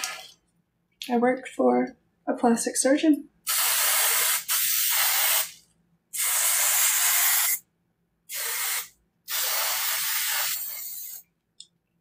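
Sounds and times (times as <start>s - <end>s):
aerosol spray hissing: 3.5s - 5.6s, 6.2s - 7.6s, 8.3s - 11.2s.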